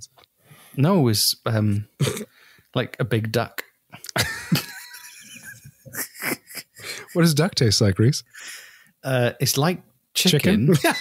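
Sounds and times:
man laughing: 0:04.1 - 0:07.4, 0:10.5 - 0:11.0.

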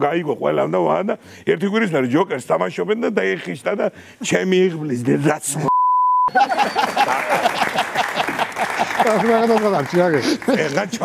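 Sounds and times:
censor bleep: 0:05.7 - 0:06.3.

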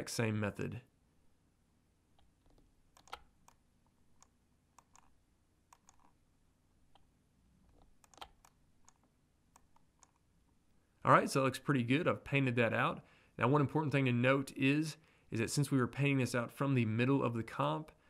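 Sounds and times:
computer mouse and keyboard clicks: 0:02.2 - 0:03.6, 0:04.2 - 0:06.2, 0:07.7 - 0:10.3.

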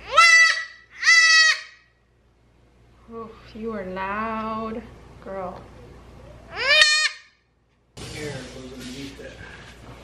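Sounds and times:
goat kid bleating: 0:00.0 - 0:01.7.

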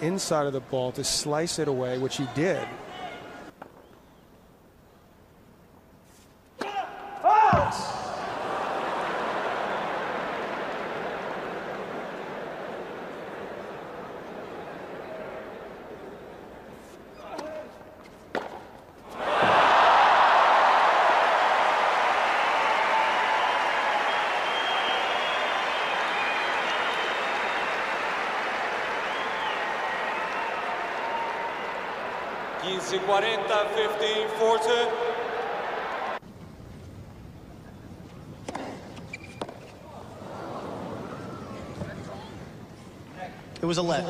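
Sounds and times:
crowd cheering and applauding: 0:08.0 - 0:16.1, 0:19.2 - 0:36.2.

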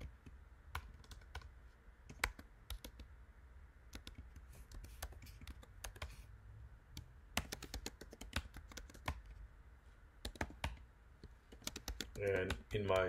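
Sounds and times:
computer keyboard typing: 0:00.7 - 0:01.5, 0:02.1 - 0:03.1, 0:03.9 - 0:06.2, 0:07.4 - 0:09.4, 0:10.2 - 0:10.8, 0:11.4 - 0:13.0.

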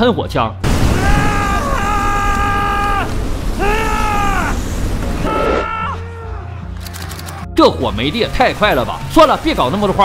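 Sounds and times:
flamethrower firing: 0:00.6 - 0:05.7.

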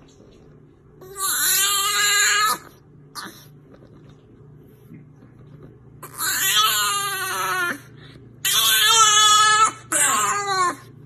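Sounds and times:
dog wailing: 0:01.0 - 0:03.4, 0:06.0 - 0:10.9.

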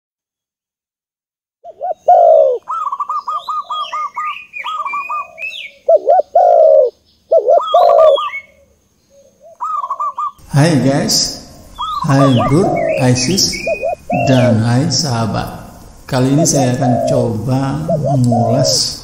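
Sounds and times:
bird cooing: 0:01.6 - 0:10.4, 0:11.7 - 0:14.8, 0:16.6 - 0:19.0
birds chirping and twittering: 0:01.6 - 0:19.0.

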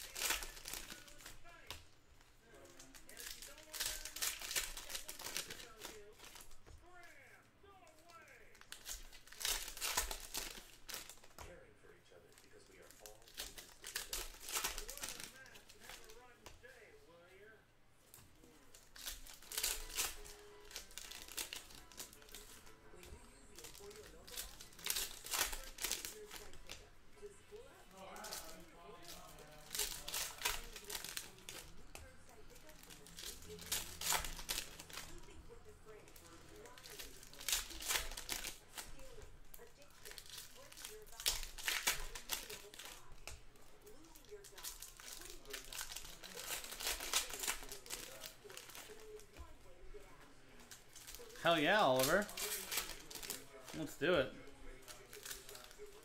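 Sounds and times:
foil wrappers crinkling and tearing: 0:00.0 - 0:16.9, 0:18.4 - 0:56.0.

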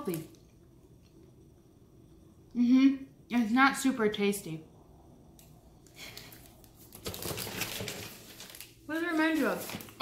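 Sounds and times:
woman speaking: 0:00.0 - 0:00.3, 0:02.6 - 0:04.7, 0:08.9 - 0:10.0
plastic wrapper crinkling: 0:05.9 - 0:10.0.

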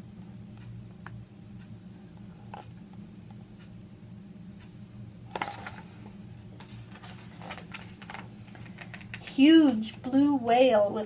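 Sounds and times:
low steady hum: 0:00.0 - 0:11.0
book pages turning: 0:05.3 - 0:06.0, 0:06.6 - 0:09.2.

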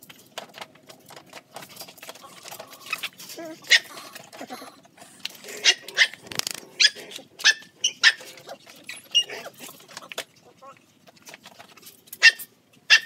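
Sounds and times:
puppies yelping: 0:02.2 - 0:10.2, 0:12.2 - 0:13.0.

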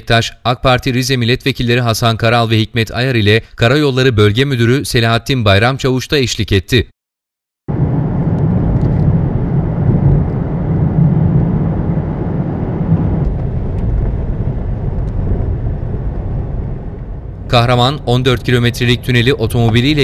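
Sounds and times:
car engine and road noise: 0:07.7 - 0:20.0.

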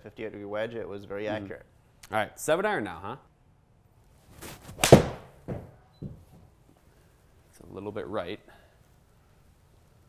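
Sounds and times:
club swishing: 0:04.3 - 0:05.3
golf club striking ball: 0:04.8 - 0:05.6.

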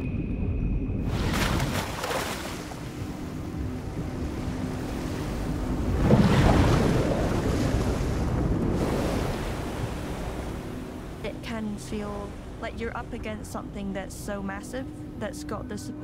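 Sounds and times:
wind on open water: 0:00.0 - 0:15.3
sea waves breaking: 0:01.0 - 0:14.4.

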